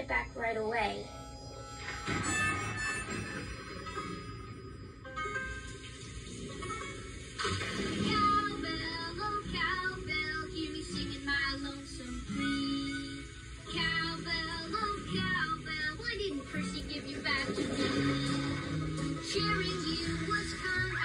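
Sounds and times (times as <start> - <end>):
cartoon song backing music: 0.0 - 21.0
person singing: 8.0 - 21.0.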